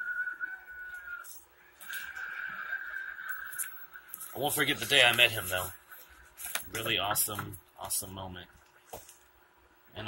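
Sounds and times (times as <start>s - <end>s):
person whistling high notes: 0.0s - 4.4s
faint paper rustling: 0.9s - 9.4s.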